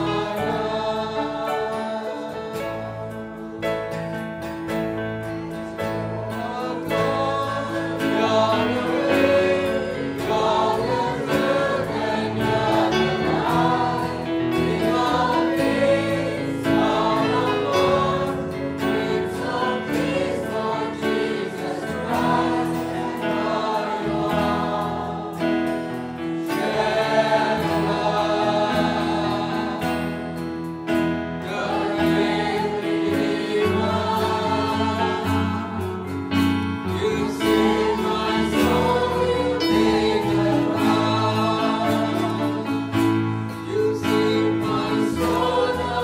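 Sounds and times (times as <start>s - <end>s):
choir singing worship song: 0.0s - 46.0s.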